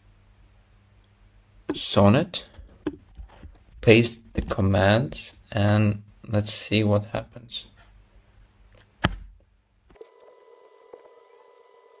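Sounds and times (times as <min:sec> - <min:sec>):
electronic hum with high tone: 0:09.9 - 0:12.0.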